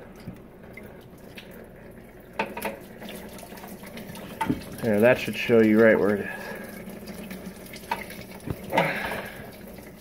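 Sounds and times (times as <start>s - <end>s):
coolant pouring into drain pan: 0.0s - 10.0s.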